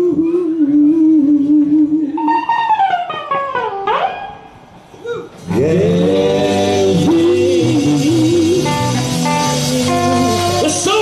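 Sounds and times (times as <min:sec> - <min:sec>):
live soul music: 0:00.0 - 0:11.0.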